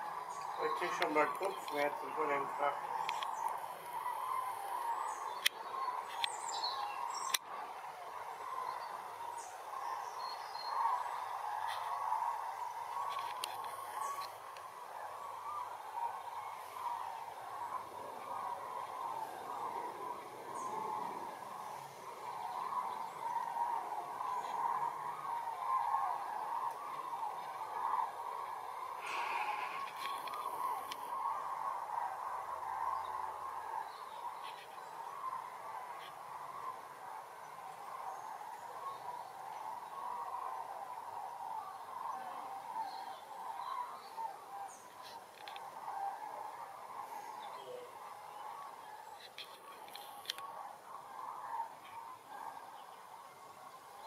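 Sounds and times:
flock of cranes calling: 0.0s - 54.0s.

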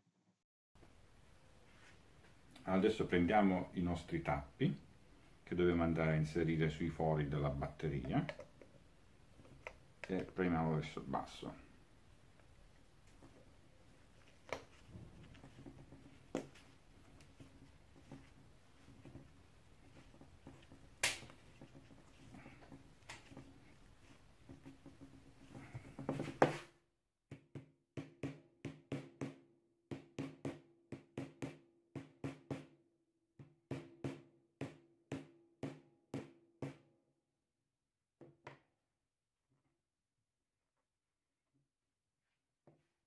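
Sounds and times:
rubber mallet tapping caps: 8.0s - 8.8s.

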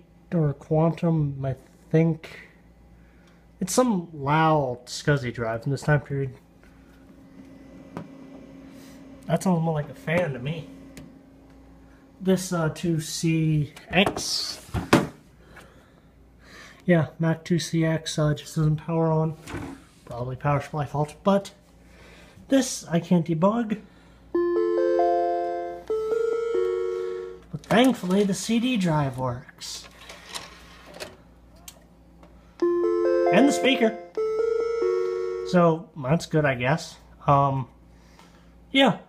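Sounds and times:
computer fan hum: 0.0s - 39.0s
electronic chime notes: 32.6s - 35.6s.

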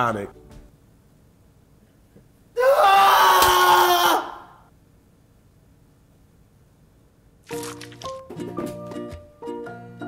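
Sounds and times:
man screaming: 2.6s - 4.6s.

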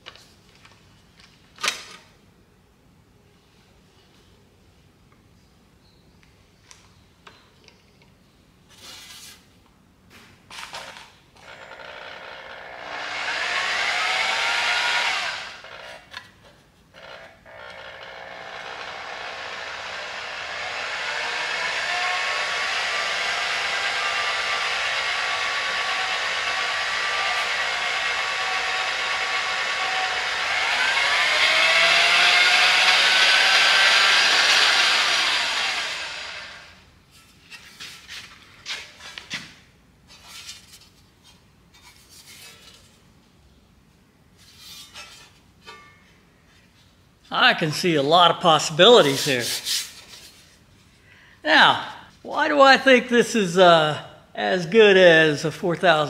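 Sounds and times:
electric drill motor whine: 11.4s - 16.3s, 17.0s - 36.8s.

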